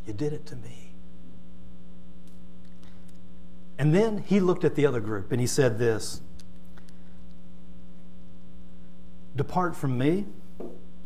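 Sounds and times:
man speaking: 0:00.0 - 0:01.0, 0:03.8 - 0:06.3, 0:09.4 - 0:10.4
electrical mains hum: 0:00.0 - 0:11.0.

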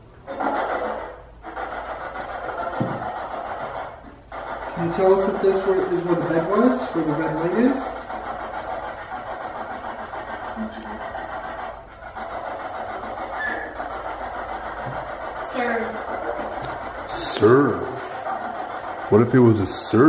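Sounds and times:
garbled voice fragments: 0:12.4 - 0:20.0.

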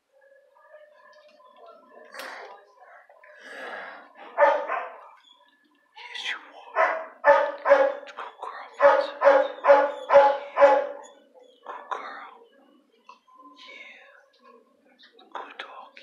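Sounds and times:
dog barking: 0:04.2 - 0:05.2, 0:06.7 - 0:08.2, 0:08.8 - 0:12.0.

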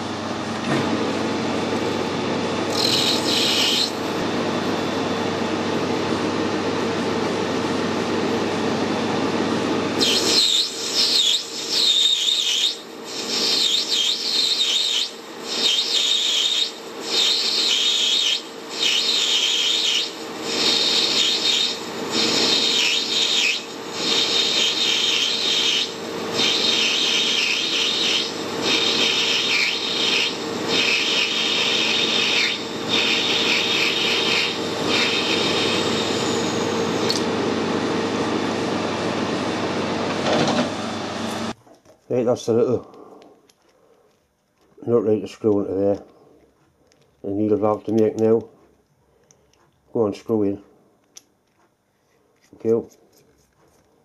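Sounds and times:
lathe running hum: 0:00.0 - 0:41.6
lathe cutting squeal: 0:02.7 - 0:04.1, 0:10.0 - 0:37.1.

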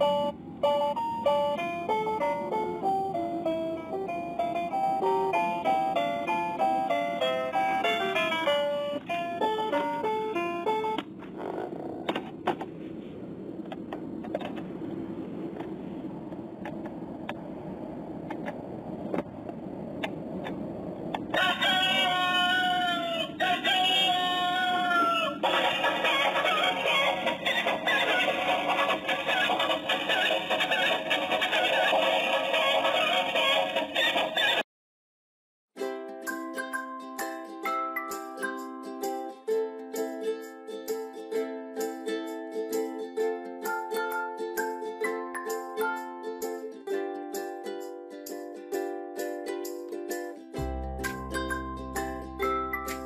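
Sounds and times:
electronic toy tune: 0:00.0 - 0:11.0
electronic rooster crow: 0:21.3 - 0:34.6.

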